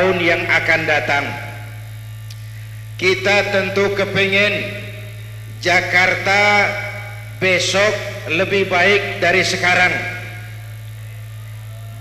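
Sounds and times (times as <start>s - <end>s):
low electrical hum: 0.0s - 12.0s
voice echo over loudspeaker: 0.0s - 12.0s.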